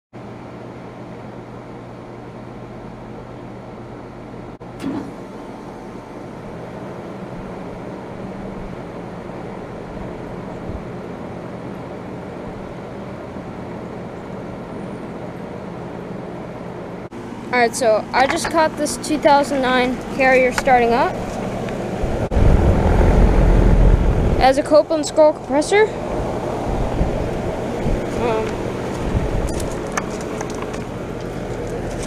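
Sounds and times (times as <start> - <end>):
heat pump humming: 0.2 - 32.0.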